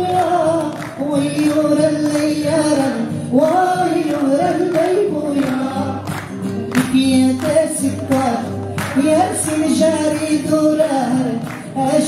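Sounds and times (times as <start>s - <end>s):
acoustic guitar: 0.0s - 12.0s
man singing: 0.0s - 12.0s.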